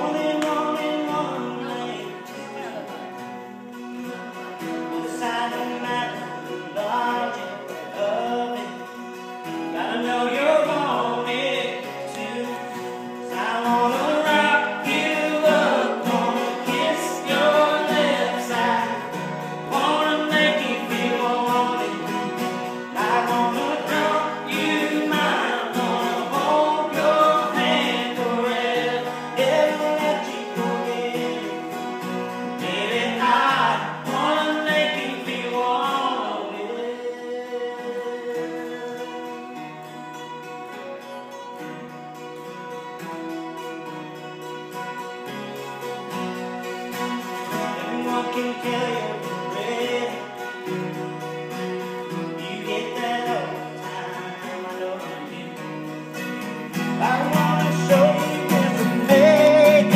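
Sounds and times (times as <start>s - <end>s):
people singing: 0.0s - 39.6s, 47.4s - 51.0s, 52.0s - 59.9s
acoustic guitars playing: 0.0s - 59.9s.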